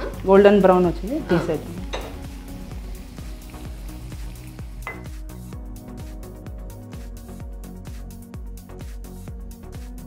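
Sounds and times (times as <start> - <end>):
food sizzling in hot oil: 0.0 - 7.8
background music: 0.0 - 10.0.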